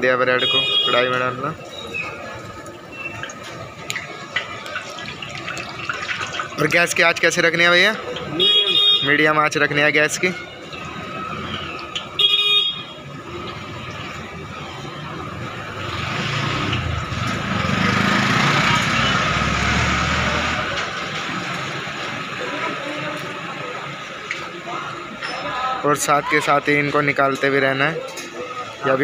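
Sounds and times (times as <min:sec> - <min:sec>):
hot oil sizzling: 0:01.9 - 0:08.8
passing vehicle: 0:13.0 - 0:24.9.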